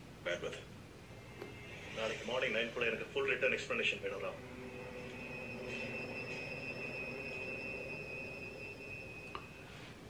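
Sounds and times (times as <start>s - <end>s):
faint low hum: 0.0s - 10.0s
high-pitched tones: 4.2s - 9.8s.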